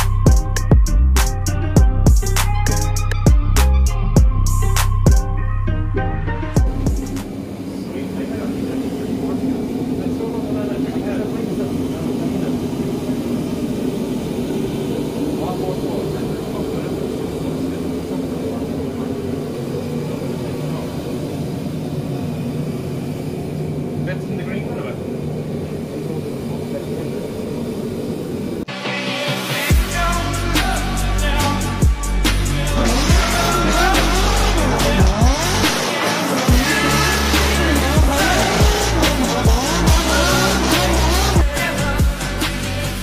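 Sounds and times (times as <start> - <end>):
workshop machinery droning: 6.3 - 28.7, 29.4 - 43.0
faint voices: 7.4 - 28.6.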